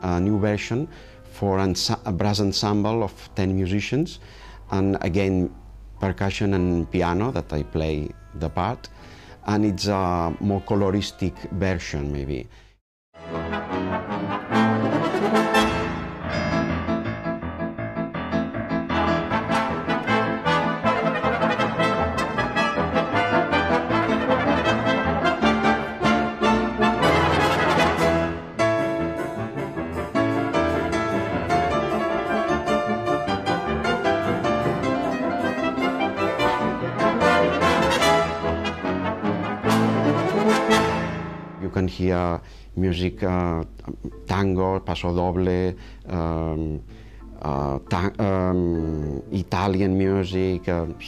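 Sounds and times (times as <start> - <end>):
brass ensemble playing: 13.2 - 41.6
piano: 13.2 - 42.3.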